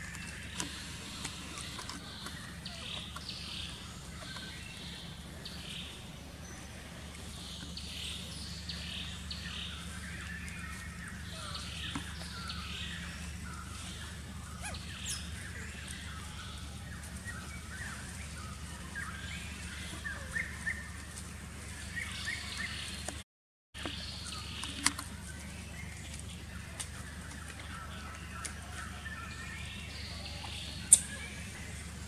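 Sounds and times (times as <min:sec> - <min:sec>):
birds chirping: 0:00.0 - 0:23.2, 0:23.8 - 0:32.0
steady low hum: 0:00.0 - 0:23.2, 0:23.8 - 0:32.0.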